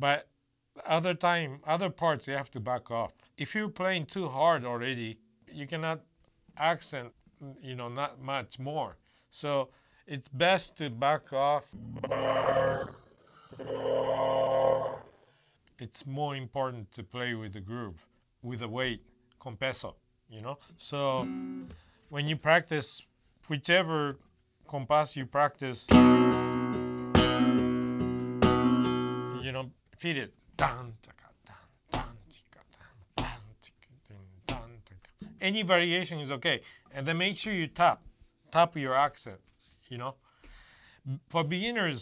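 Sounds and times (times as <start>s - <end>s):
man half-whispering: 30.7s - 35.2s.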